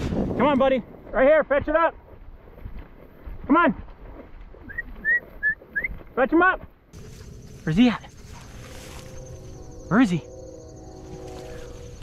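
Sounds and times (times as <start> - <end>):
dry grass and brush rustling: 0.0 - 12.0
faint high-pitched tone: 8.2 - 12.0.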